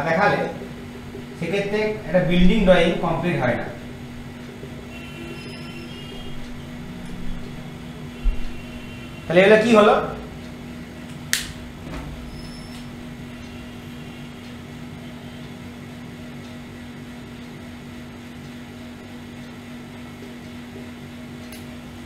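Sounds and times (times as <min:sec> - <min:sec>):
low machine hum: 0:00.0 - 0:22.0
sharp click: 0:11.1 - 0:11.6.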